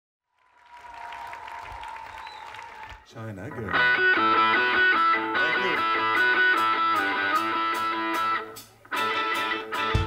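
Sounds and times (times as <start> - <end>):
audience applauding: 0.3 - 3.8.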